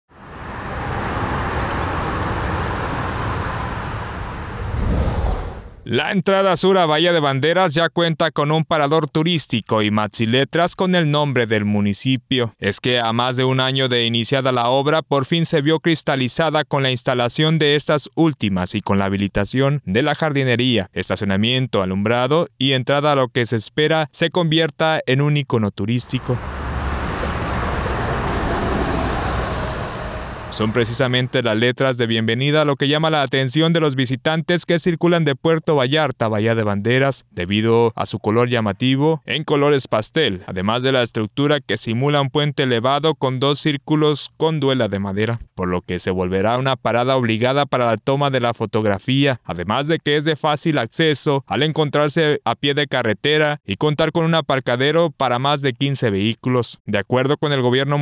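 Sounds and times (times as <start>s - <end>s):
highway traffic passing: 0.1s - 5.9s, 26.0s - 31.4s.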